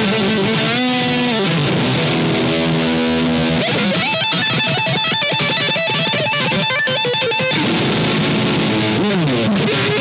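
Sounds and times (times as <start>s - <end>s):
electric guitar solo: 0.0s - 10.0s.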